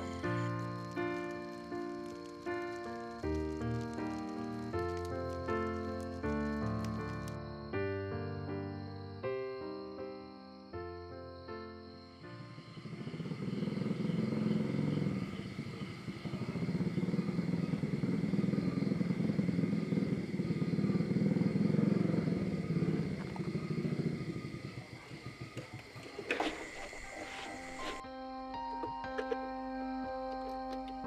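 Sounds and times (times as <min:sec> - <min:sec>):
small motorcycle engine running: 0:12.6 - 0:26.8.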